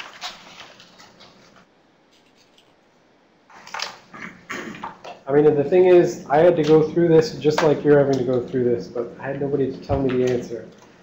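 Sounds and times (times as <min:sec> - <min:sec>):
paper pages rustling: 0:00.0 - 0:02.8.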